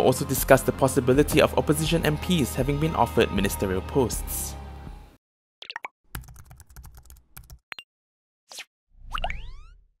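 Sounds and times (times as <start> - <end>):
keyboard typing clicks: 6.2 - 7.6.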